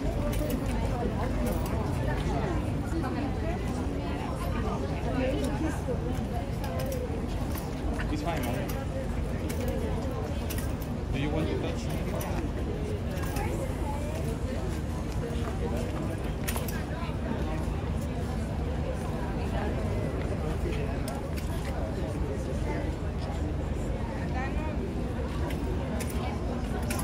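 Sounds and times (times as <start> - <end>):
indistinct chatter: 0.0 - 27.0.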